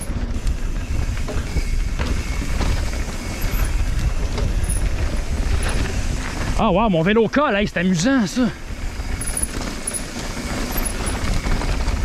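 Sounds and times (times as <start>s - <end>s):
bike rattling: 0.0s - 12.0s
bike tyres rolling on dirt: 0.0s - 12.0s
wind buffeting microphone: 0.0s - 12.0s.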